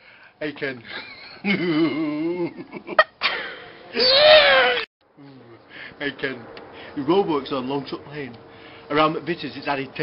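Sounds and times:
high drawn-out cry: 3.9 - 4.9.

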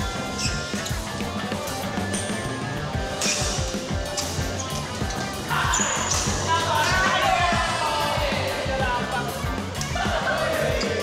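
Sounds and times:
music with thumping beat: 0.0 - 11.0.

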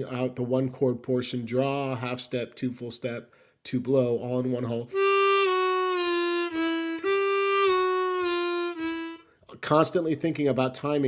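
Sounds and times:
harmonica bending notes: 4.9 - 9.4.

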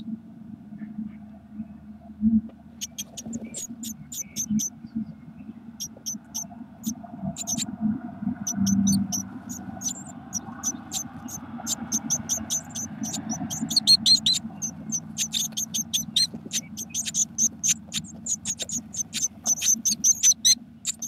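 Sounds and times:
steady low rumble: 0.0 - 21.0
nestlings cheeping: 2.8 - 4.7, 5.8 - 7.7, 8.4 - 21.0.

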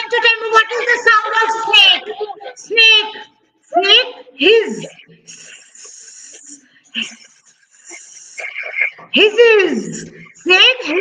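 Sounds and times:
person hissing like snake: 5.3 - 6.6.

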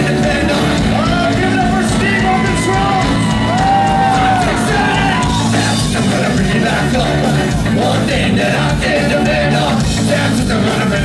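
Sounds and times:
ska-punk band playing live: 0.0 - 11.0.

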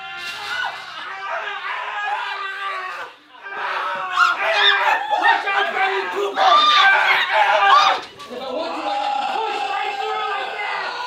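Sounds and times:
people shrieking and yelling: 0.0 - 11.0
people laughing: 0.7 - 11.0.

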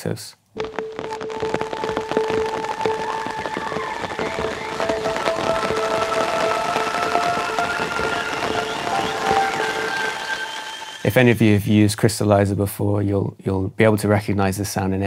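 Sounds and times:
crackling grainy texture: 0.5 - 12.0
granular synth pad: 0.6 - 11.4.

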